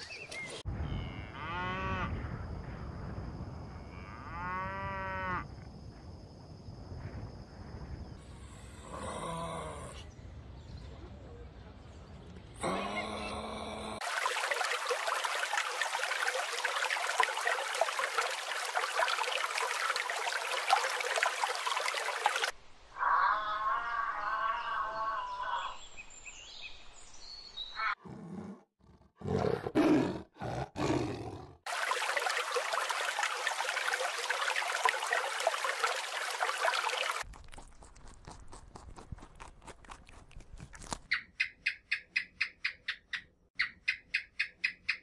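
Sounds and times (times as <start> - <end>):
high pitched animal call: 23.0 - 25.8.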